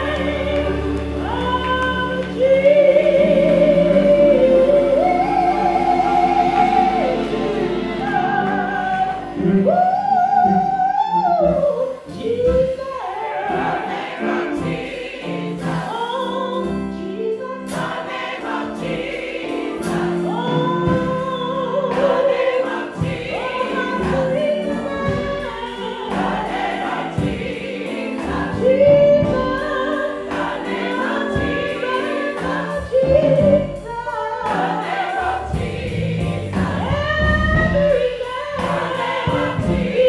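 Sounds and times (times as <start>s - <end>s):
gospel choir singing: 0.0s - 40.0s.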